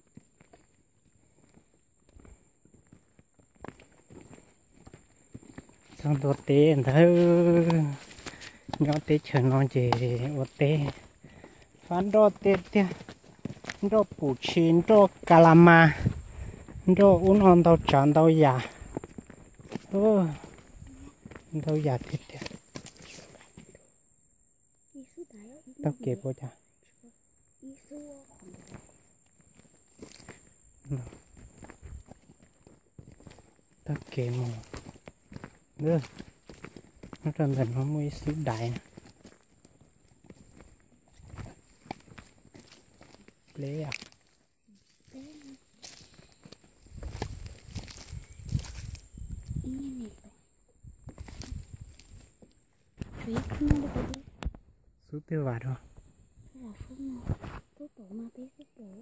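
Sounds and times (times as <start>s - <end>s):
footsteps on dirt path: 0.0s - 23.9s, 27.8s - 54.6s, 55.9s - 57.8s
footsteps brushing through plants: 5.5s - 11.1s, 33.1s - 49.7s, 51.1s - 52.4s
person's voice: 6.0s - 8.1s, 8.8s - 11.0s, 11.9s - 13.0s, 13.8s - 16.1s, 53.2s - 54.3s.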